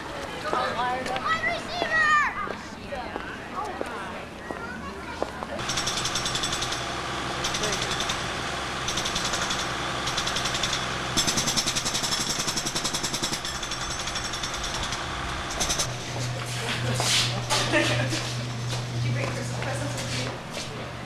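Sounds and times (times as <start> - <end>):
low motor hum: 5.6 - 12.6, 13.4 - 21.0
rapid mechanical rattling: 5.6 - 16.5.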